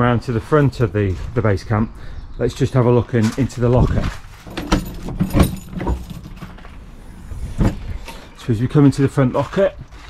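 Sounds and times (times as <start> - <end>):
keys jangling: 4.5 - 6.8.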